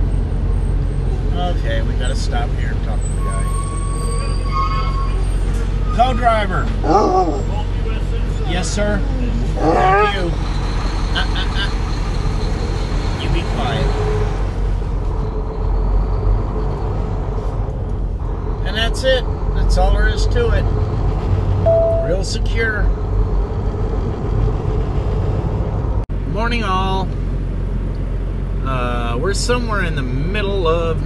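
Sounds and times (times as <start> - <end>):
truck diesel engine drone: 0.0 - 31.0
voices: 1.3 - 5.2, 5.8 - 11.8, 13.2 - 14.1, 21.7 - 22.9.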